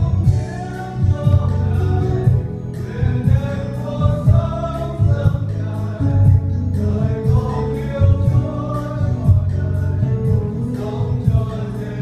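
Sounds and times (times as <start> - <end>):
low instrumental accompaniment: 0.0 - 12.0
mixed choir singing in harmony: 0.0 - 12.0.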